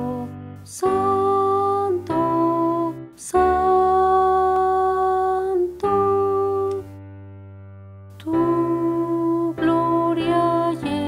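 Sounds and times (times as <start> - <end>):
electronic keyboard held chords: 0.0 - 11.0.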